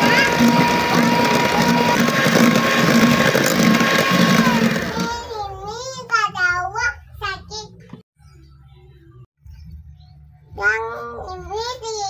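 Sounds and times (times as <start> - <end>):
electric hand mixer whining: 0.0 - 5.3.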